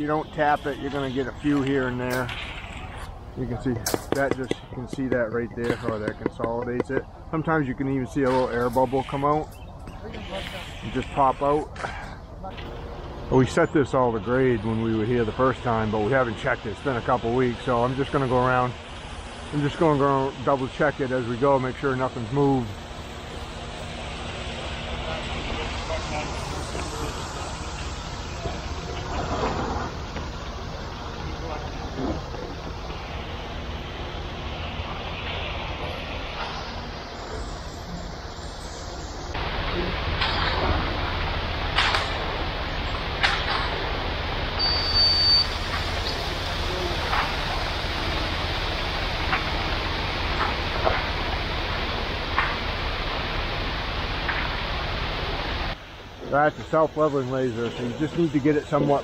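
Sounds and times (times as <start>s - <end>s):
distant voices: 0.0s - 59.0s
diesel truck engine running: 10.8s - 59.0s.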